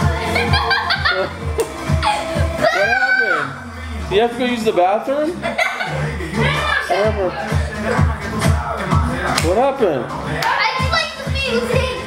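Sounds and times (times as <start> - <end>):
music with steady bass beat: 0.0 - 12.0
person laughing: 0.2 - 2.6, 5.4 - 6.7.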